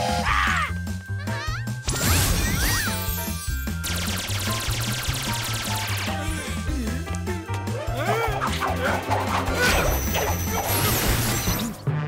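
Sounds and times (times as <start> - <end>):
background music: 0.0 - 12.0
magic zaps: 8.8 - 11.8.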